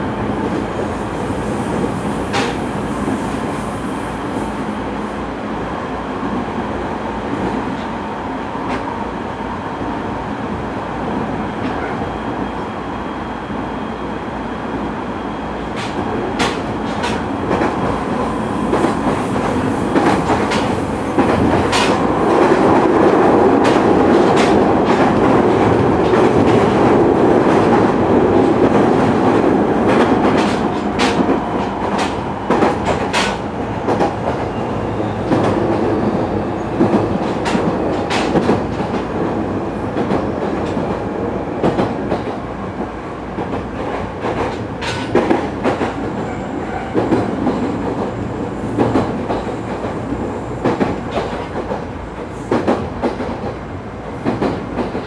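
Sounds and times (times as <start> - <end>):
train wheels rumbling on rails: 0.0 - 55.0.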